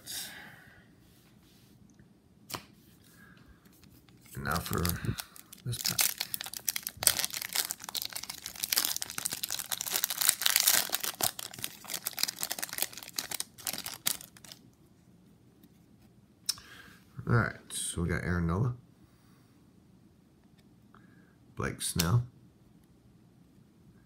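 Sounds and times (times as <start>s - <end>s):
foil wrapper crinkling and tearing: 4.2s - 14.6s.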